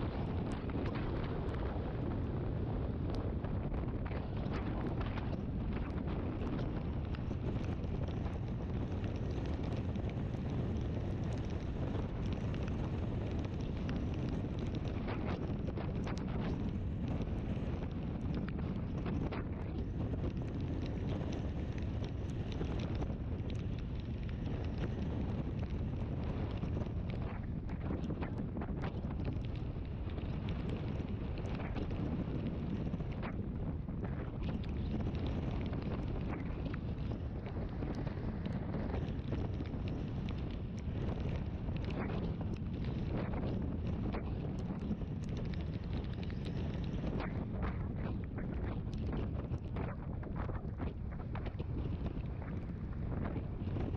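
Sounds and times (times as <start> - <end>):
wind rush on microphone: 0.0 - 53.9
faint ticks: 5.0 - 33.4, 34.0 - 53.9.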